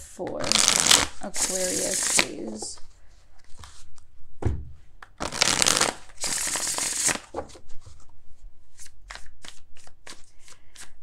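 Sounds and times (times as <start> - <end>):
cards sliding: 0.5 - 2.8, 5.2 - 8.1, 8.7 - 11.0
soft thump: 4.4 - 4.8.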